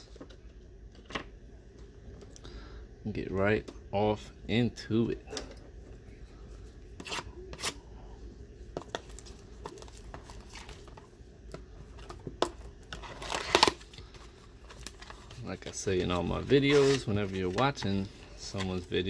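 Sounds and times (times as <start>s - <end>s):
cardboard ripping: 12.9s - 13.8s, 16.4s - 17.2s.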